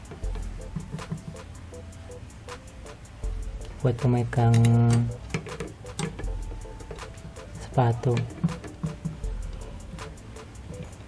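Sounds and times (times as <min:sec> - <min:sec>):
faint background music: 0:00.0 - 0:11.0
pliers clicking on metal bolt: 0:04.4 - 0:06.3.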